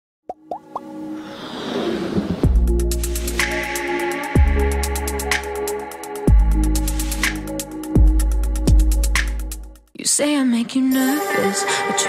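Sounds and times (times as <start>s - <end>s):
sustained music: 0.6s - 9.8s.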